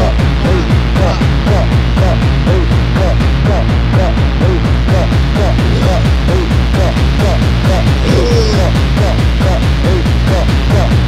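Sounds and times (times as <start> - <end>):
deep kick drum beat: 0.0 - 11.0
techno music: 0.0 - 11.0.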